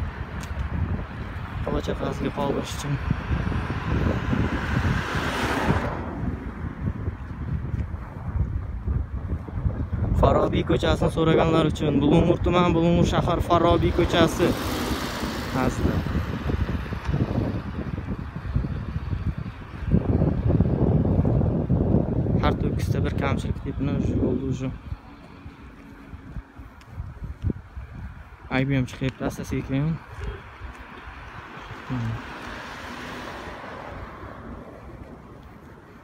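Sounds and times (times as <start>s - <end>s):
wind buffeting microphone: 0.0s - 36.0s
car passing close by: 3.0s - 6.8s, 13.6s - 17.6s, 31.2s - 35.4s.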